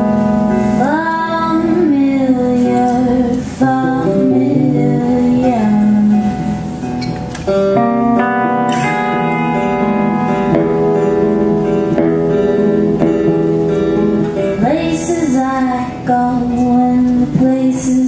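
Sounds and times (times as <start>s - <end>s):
guitar playing ringing chords: 0.0s - 17.8s
person singing: 0.7s - 6.6s, 14.5s - 18.0s.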